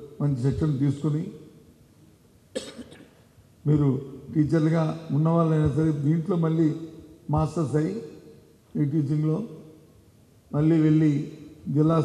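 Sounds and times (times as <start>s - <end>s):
man speaking: 0.0s - 1.5s, 3.6s - 9.7s, 10.5s - 12.0s
person coughing: 2.5s - 3.2s.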